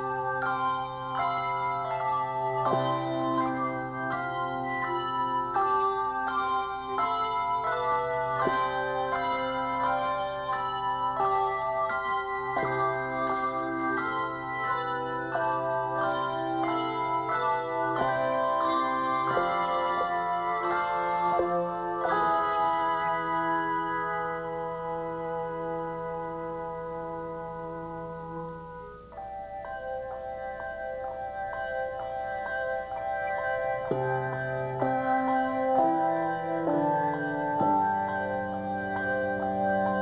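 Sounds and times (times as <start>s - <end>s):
handbells ringing melody: 0.0s - 40.0s
low bass bells held: 0.0s - 40.0s.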